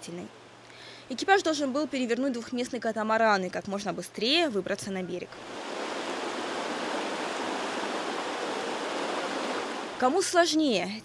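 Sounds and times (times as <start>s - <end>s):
whitewater rapids rushing: 5.4s - 10.0s.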